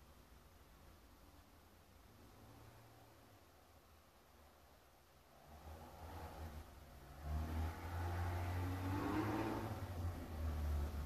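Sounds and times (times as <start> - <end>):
motor vehicle driving past: 5.3 - 11.0.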